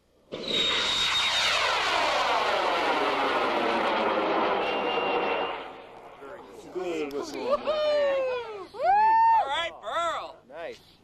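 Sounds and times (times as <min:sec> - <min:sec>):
rocket motor roaring: 0:00.3 - 0:06.2.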